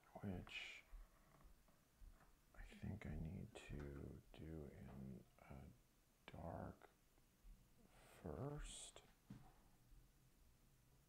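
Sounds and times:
person mumbling quietly: 0.0 - 0.9, 2.6 - 6.9, 8.0 - 9.1.

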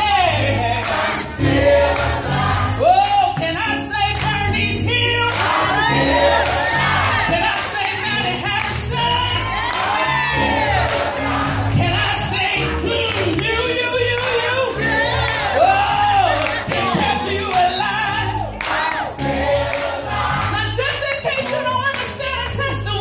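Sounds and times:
gospel choir singing: 0.0 - 21.6
low instrumental accompaniment: 0.0 - 23.0.

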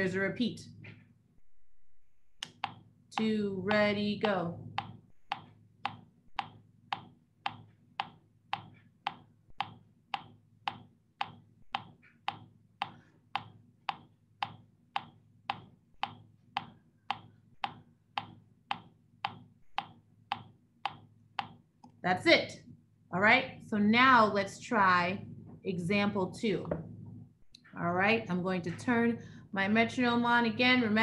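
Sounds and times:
metronome ticking: 2.4 - 21.6.

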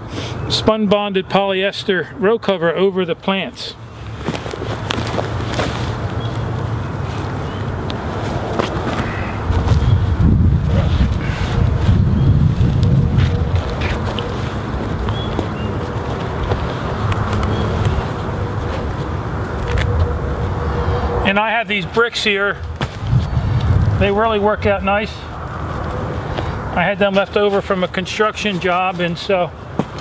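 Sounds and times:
fabric cover rustling and crinkling: 4.1 - 16.7
wind rumbling on microphone: 4.3 - 21.3, 22.5 - 26.8.

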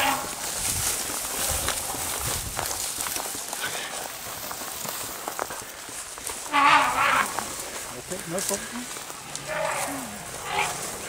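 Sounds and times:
footsteps crunching through dry grass: 0.0 - 11.0
twigs rustling and snapping: 0.0 - 11.0.

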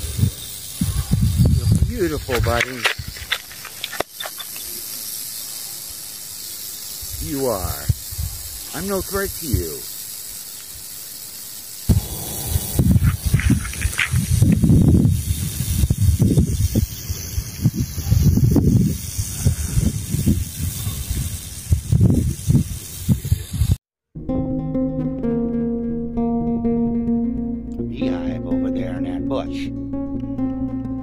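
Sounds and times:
rattlesnake rattling: 0.0 - 23.8
low rumbles: 11.9 - 16.5
acoustic guitar music: 24.2 - 31.0.

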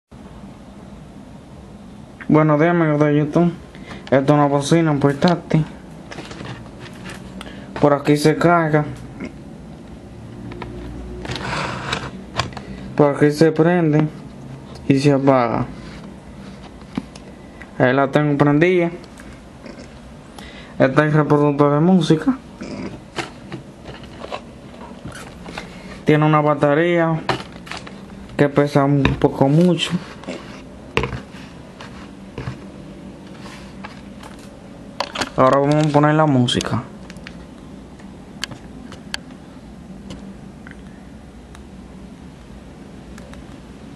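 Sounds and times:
low steady hum: 0.2 - 43.9
scraping rub of handling: 6.1 - 7.4, 11.2 - 12.7, 15.7 - 17.2, 23.1 - 26.1, 29.3 - 34.5
speaker box knocking on desk: 31.0 - 31.3.

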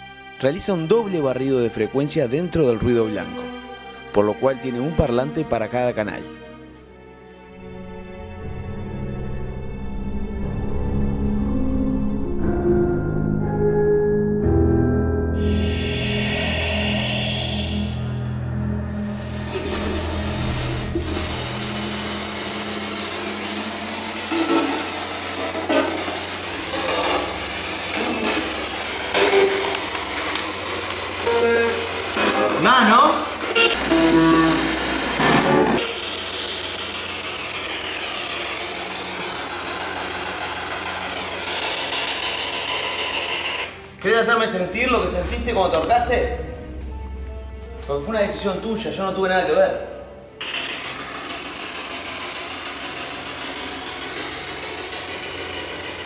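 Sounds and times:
eerie background music: 0.0 - 56.0.

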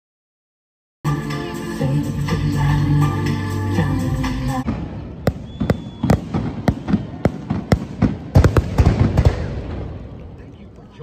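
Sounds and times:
fireworks bangs and crackles: 4.6 - 10.4.

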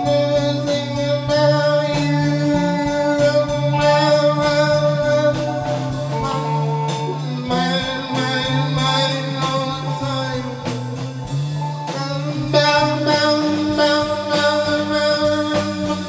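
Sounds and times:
drum kit beat: 0.0 - 16.0
electric guitar chords: 0.0 - 16.0.

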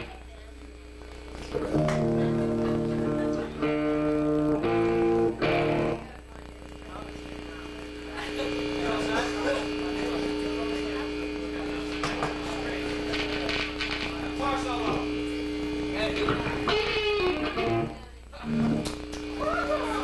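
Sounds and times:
guitar amplifier buzzing: 0.0 - 20.0
steady hum of held tones: 0.0 - 20.0
indistinct crowd chatter: 1.6 - 18.7.

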